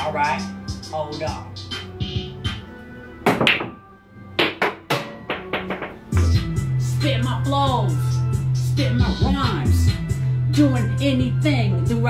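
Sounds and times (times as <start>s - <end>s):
hip-hop instrumental: 0.0s - 12.0s
cue striking ball: 3.3s - 3.8s, 4.4s - 6.4s
pool balls clacking: 3.3s - 6.4s.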